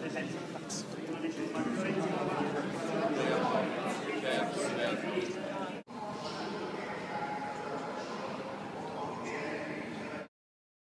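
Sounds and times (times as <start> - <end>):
indistinct voices in a hall: 0.0 - 10.3.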